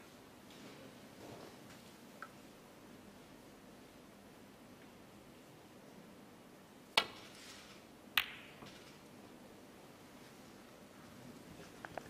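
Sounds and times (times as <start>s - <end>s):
balls colliding click: 7.0s - 7.3s, 8.1s - 9.0s.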